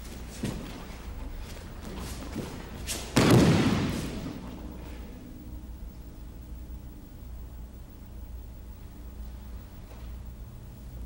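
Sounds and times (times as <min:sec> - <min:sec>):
feet knocking on mat: 0:00.0 - 0:04.4
body thudding onto mat: 0:01.8 - 0:04.6.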